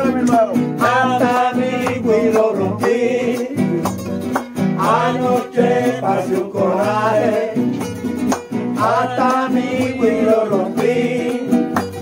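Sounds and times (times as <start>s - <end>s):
man singing: 0.0s - 4.1s, 4.8s - 7.8s, 8.8s - 11.8s
acoustic guitars strumming: 0.0s - 12.0s.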